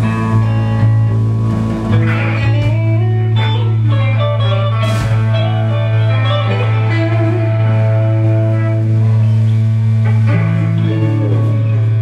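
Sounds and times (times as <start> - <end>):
electric blues-rock band jamming: 0.0 - 12.0.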